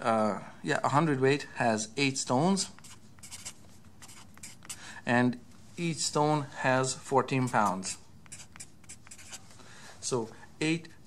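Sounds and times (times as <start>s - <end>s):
marker scratching on paper: 2.6s - 4.8s, 7.4s - 9.4s.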